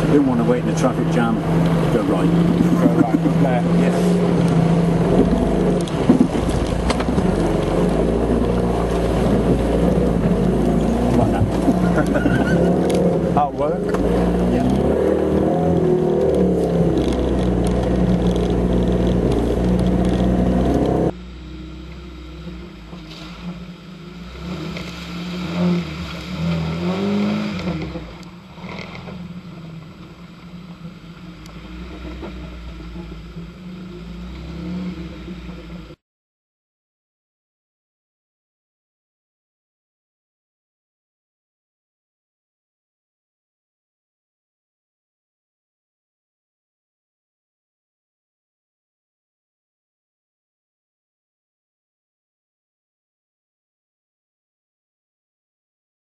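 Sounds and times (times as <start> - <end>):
water washing over windscreen: 0.0 - 21.1, 23.0 - 34.4
engine revs rising and falling: 0.0 - 29.8, 31.4 - 36.0
engine running under load: 0.0 - 36.0.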